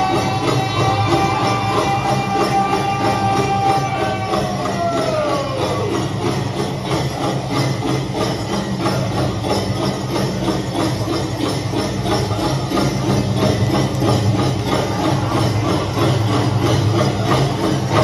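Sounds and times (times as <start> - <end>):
drum group song over loudspeaker: 0.0 - 6.4
shaking jingles: 0.0 - 18.0
steady drumbeat: 0.0 - 18.0.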